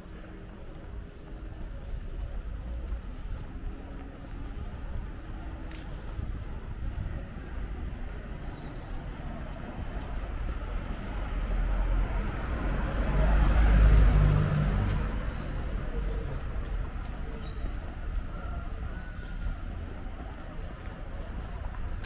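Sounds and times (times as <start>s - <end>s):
hum of town traffic: 0.0s - 22.0s
car passing: 10.7s - 16.9s.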